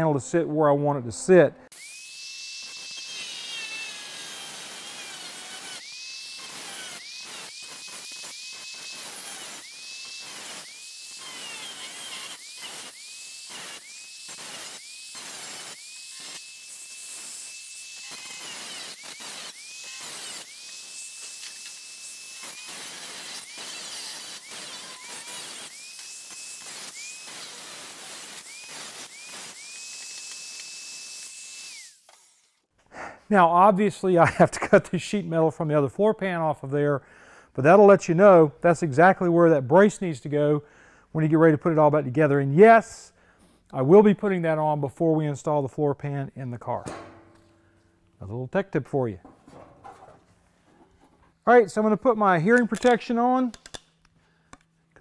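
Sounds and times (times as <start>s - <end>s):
electric grinder whining: 1.7s - 32.6s.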